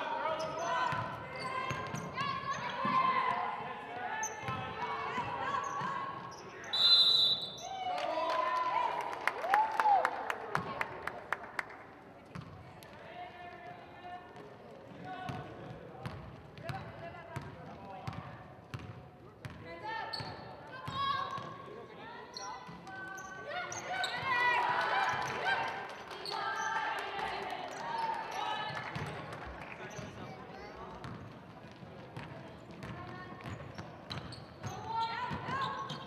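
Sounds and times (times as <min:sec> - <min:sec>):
sneakers squeaking: 0:05.2 - 0:07.6, 0:17.4 - 0:24.5, 0:31.0 - 0:36.0.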